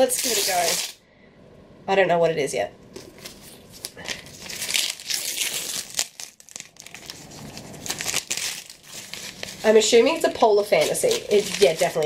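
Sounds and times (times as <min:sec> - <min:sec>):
wrapping paper tearing: 0:00.0 - 0:01.0, 0:03.1 - 0:12.0.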